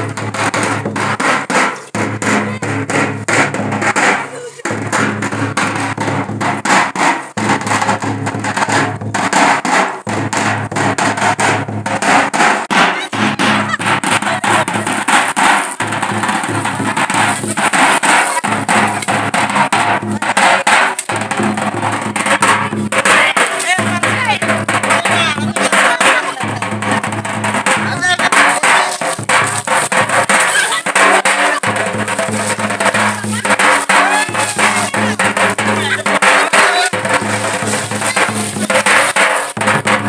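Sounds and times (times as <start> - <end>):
fast continuous drumming: 0.0 - 40.0
voices in music: 17.2 - 39.1.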